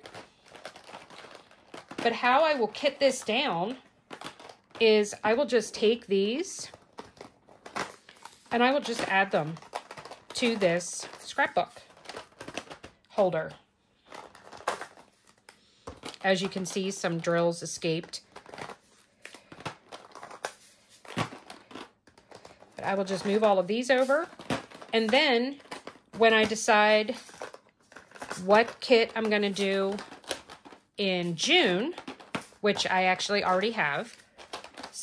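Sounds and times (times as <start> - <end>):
plastic containers clicking: 18.3 - 35.0.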